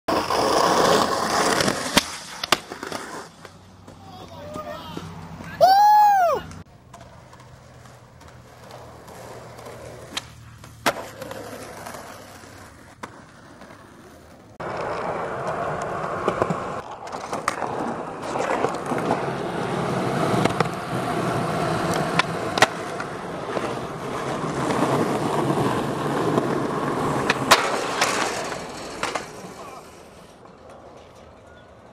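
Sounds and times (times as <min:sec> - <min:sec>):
skateboard clacks: 0:00.1 - 0:05.6, 0:06.4 - 0:31.9
skateboard wheels rolling on concrete: 0:00.1 - 0:31.9
person calling out loudly: 0:04.1 - 0:06.5.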